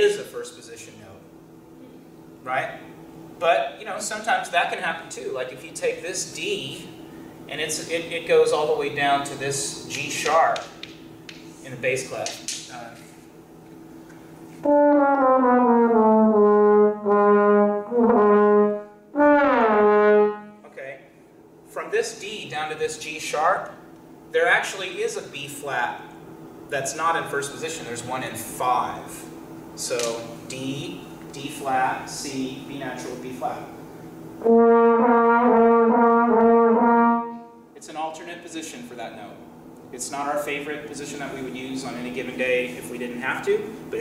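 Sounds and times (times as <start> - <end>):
trombone slide glissando: 14.6 - 20.6, 34.4 - 37.5.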